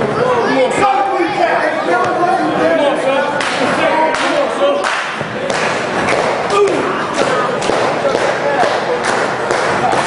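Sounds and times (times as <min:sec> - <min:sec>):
crowd shouting: 0:06.1 - 0:10.0.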